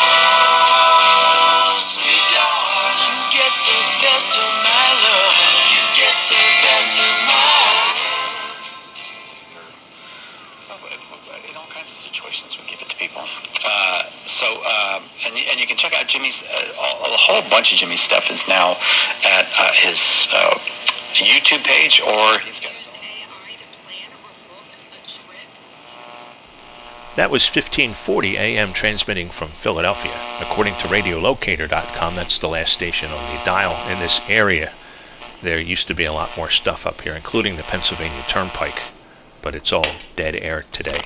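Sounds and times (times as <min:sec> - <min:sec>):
radio music with singing: 0:00.0 - 0:40.0
radio hiss: 0:00.0 - 0:41.0
radio voice fragments: 0:00.0 - 0:41.0.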